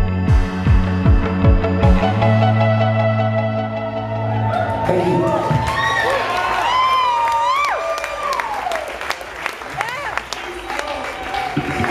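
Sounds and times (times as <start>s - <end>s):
audience clapping and cheering: 4.3s - 11.9s.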